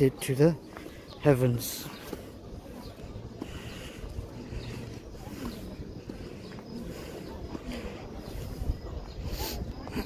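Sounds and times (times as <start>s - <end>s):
faint voices: 0.0s - 10.0s
wind rumble on microphone: 8.0s - 10.0s.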